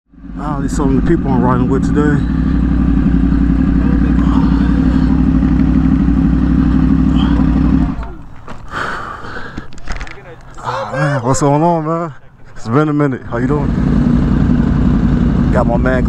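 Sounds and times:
motorcycle engine idling: 0.1s - 9.8s, 13.2s - 16.0s.

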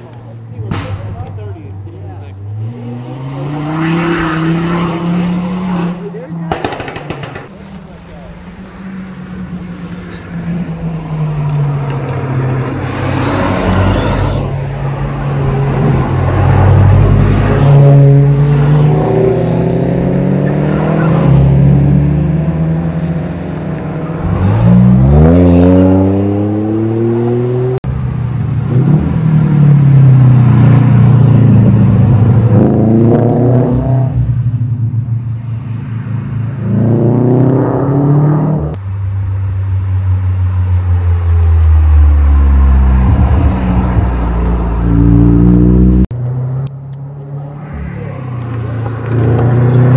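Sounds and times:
car engines revving past: 0.0s - 38.9s, 39.6s - 49.9s.

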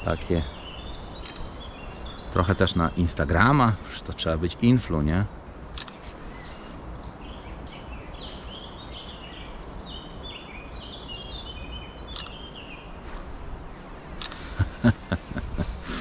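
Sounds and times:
songbird singing: 0.0s - 16.0s
sharp click: 1.2s - 1.5s, 5.7s - 6.1s, 12.1s - 12.4s, 14.2s - 14.5s.

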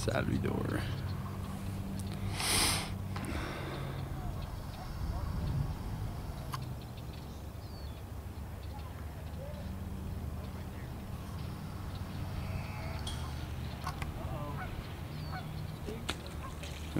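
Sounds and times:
steady low rumble: 0.0s - 16.0s
faint distant voices: 0.0s - 16.9s
short loud hiss: 2.3s - 3.0s.

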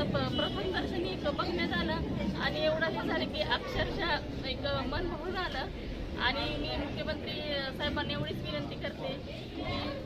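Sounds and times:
people chattering: 0.0s - 10.0s
woman speaking into microphones: 0.0s - 10.0s.

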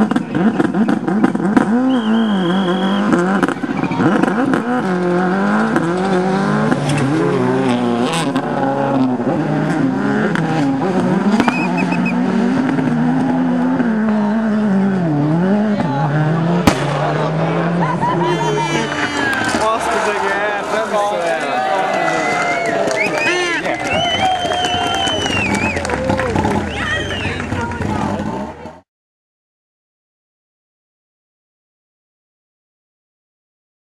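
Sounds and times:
rally car engines revving: 0.0s - 28.8s.

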